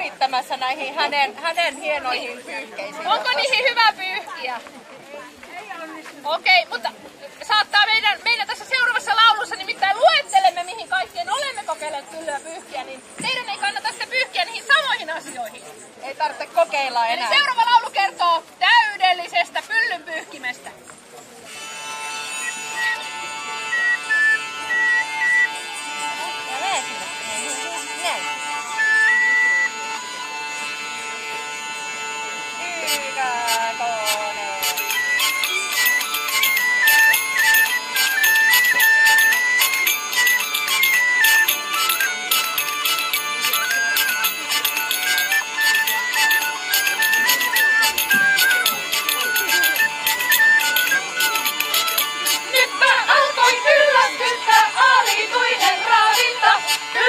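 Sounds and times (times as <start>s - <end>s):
hurdy-gurdy melody with drone: 20.2s - 57.0s
recorders playing: 21.4s - 57.0s
jingling tambourine: 34.6s - 57.0s.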